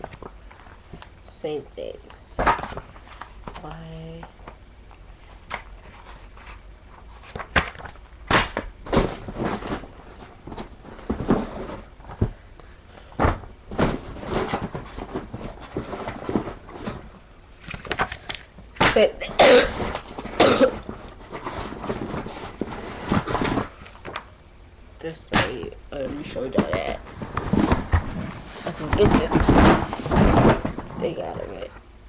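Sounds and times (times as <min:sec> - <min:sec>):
papers rustling and crinkling: 0:02.4 - 0:19.0, 0:19.7 - 0:24.3, 0:25.4 - 0:31.7
girl coughing: 0:19.2 - 0:19.8, 0:20.4 - 0:20.8.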